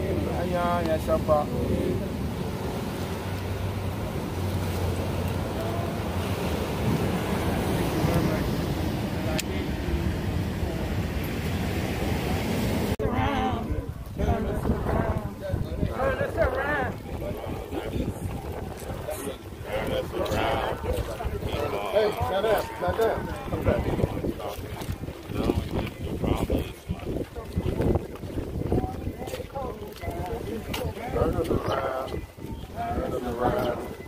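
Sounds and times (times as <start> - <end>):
ocean surf rushing: 0.0 - 29.2
faint crowd voices: 0.0 - 34.0
wind buffeting microphone: 0.0 - 34.0.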